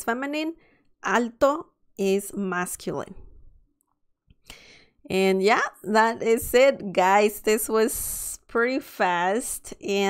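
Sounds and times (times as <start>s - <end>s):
woman speaking: 0.0s - 3.4s, 5.1s - 10.0s
intake of breath: 4.4s - 5.0s.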